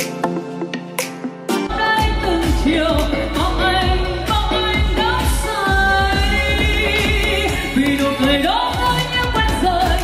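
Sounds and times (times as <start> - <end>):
backing music with fast beat: 0.0 - 10.0
woman singing pop song: 1.7 - 10.0.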